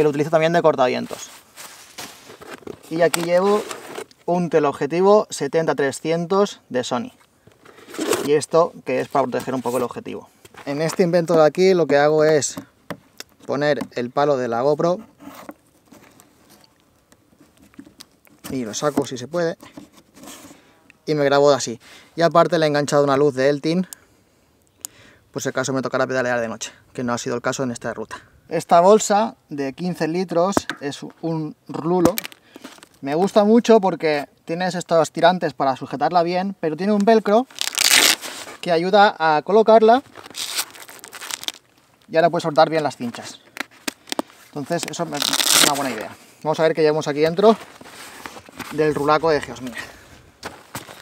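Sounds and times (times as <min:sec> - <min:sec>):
fabric rustling and crinkling: 0:00.9 - 0:04.1, 0:37.4 - 0:38.8, 0:39.9 - 0:42.0, 0:43.0 - 0:46.2, 0:47.1 - 0:51.0.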